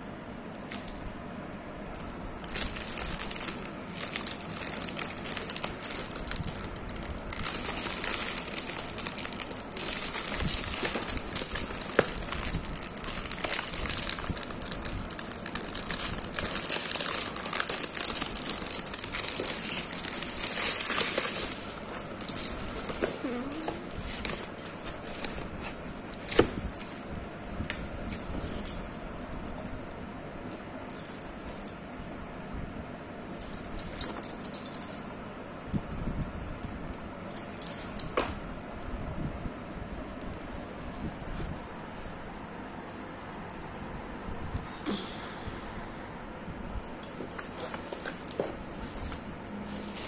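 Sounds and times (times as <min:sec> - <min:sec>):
plastic wrap crinkling: 0:02.4 - 0:26.6.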